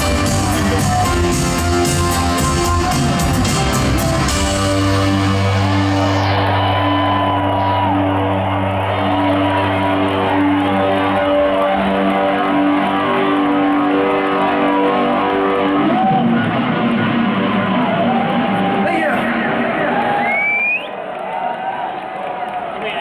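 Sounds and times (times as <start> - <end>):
live rock band playing: 0.0 - 8.0.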